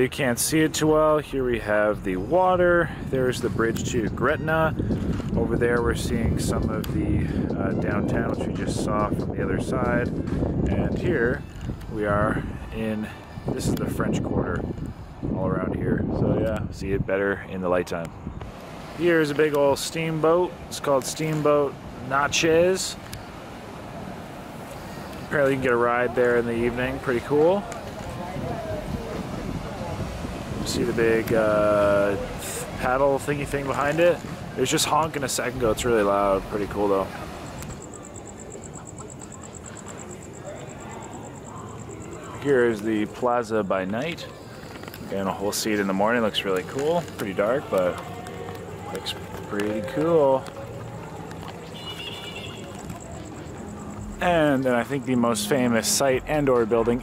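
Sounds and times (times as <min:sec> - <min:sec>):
city square background noise: 0:00.0 - 0:57.0
distant background hiss: 0:18.5 - 0:57.0.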